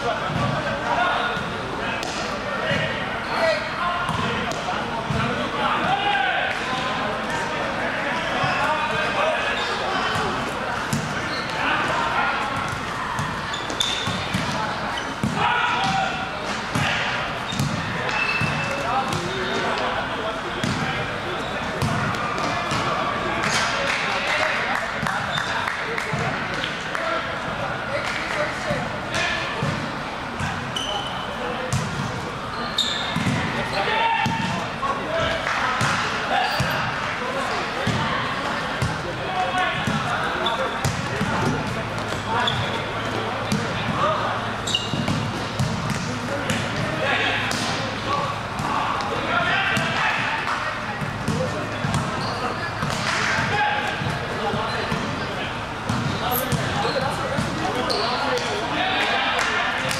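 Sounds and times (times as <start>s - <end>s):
players shouting and chatting: 0.0s - 59.9s.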